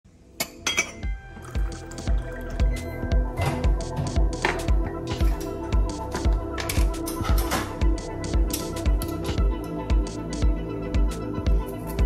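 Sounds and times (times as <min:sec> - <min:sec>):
background music with steady beat: 0:00.2 - 0:12.0
glassy clinks: 0:00.6 - 0:01.1.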